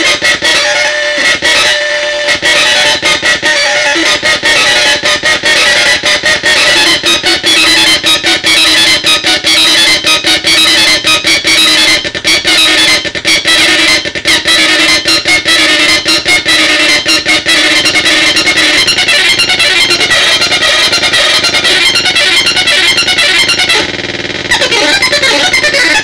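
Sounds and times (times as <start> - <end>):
buzzing synth drone: 0.0 - 26.0.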